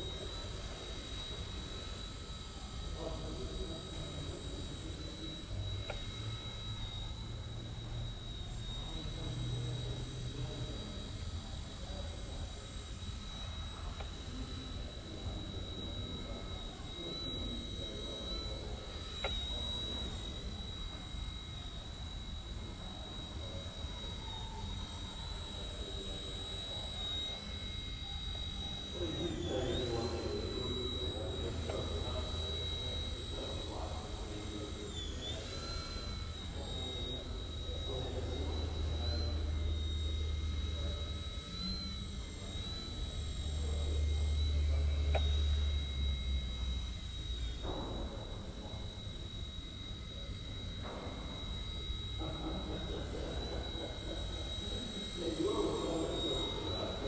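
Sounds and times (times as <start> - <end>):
small helicopter motor whining: 0.0 - 57.0.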